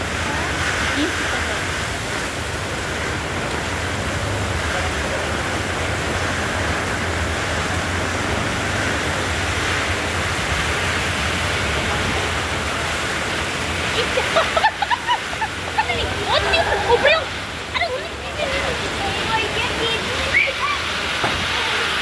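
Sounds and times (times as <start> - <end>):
torrential rain: 0.0 - 22.0.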